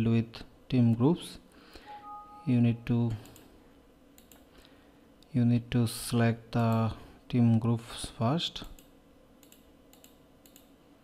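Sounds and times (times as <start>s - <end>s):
faint computer mouse clicks: 4.2s - 4.5s, 8.6s - 10.7s.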